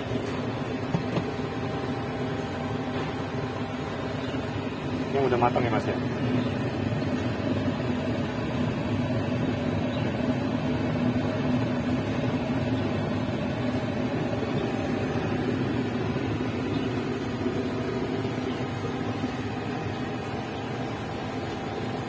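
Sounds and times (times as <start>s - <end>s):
mechanical hum with rushing noise: 0.0s - 22.0s.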